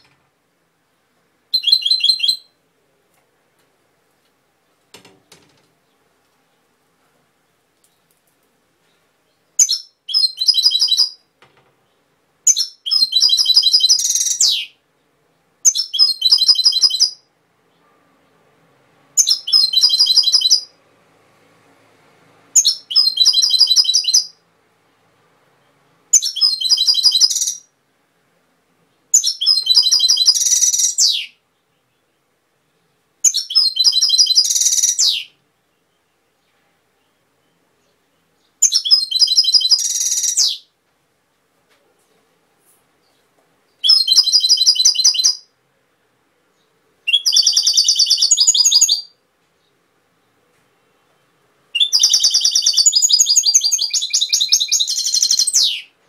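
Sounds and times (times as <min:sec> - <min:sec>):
goldfinch twittering song: 0:47.1 - 0:49.1, 0:51.8 - 0:55.9.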